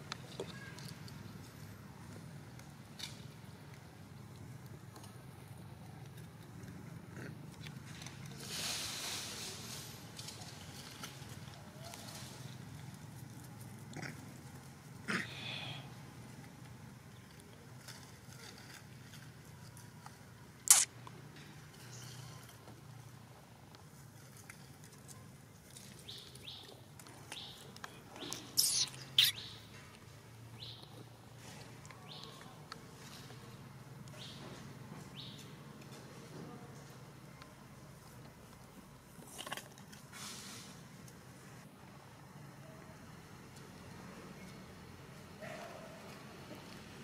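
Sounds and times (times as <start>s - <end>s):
macaque clicks and movement: 0.0s - 8.4s, 10.0s - 15.2s, 16.2s - 34.4s, 37.4s - 40.2s
animal chirps: 28.2s - 29.6s
shrill animal calls: 28.5s - 29.6s.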